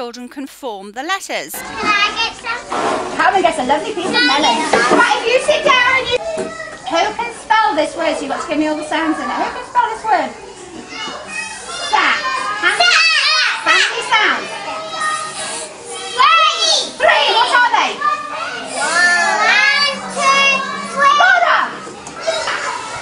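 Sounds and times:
children calling out together: 0:10.8 - 0:23.0.

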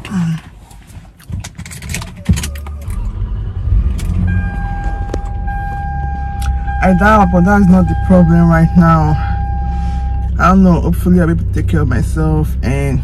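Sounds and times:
car keys jangling: 0:01.2 - 0:03.1
car engine starting and idling: 0:01.7 - 0:13.0
steady high tone: 0:02.6 - 0:13.0.

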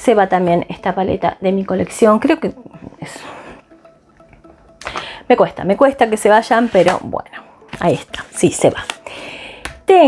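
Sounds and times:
faint background music: 0:00.0 - 0:10.0
breath in: 0:04.8 - 0:05.3, 0:09.0 - 0:09.7
woman sighing: 0:04.8 - 0:05.3.

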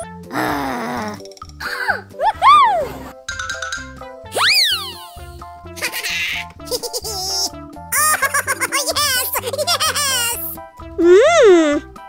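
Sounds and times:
bouncy children's music: 0:00.0 - 0:12.0
swooping cartoon tone: 0:04.3 - 0:05.2.

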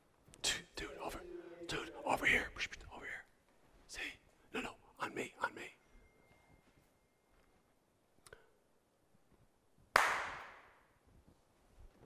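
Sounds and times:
person talking quietly: 0:00.4 - 0:03.2.

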